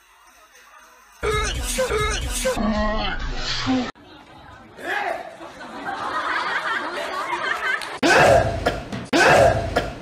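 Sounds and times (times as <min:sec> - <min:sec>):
crowd chatter in a hall: 0:04.0 - 0:05.8.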